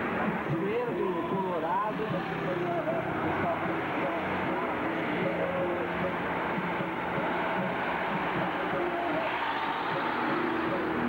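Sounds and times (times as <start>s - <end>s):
indistinct voices: 0.0s - 11.0s
road noise: 0.0s - 11.0s
vehicle engine running: 0.0s - 11.0s.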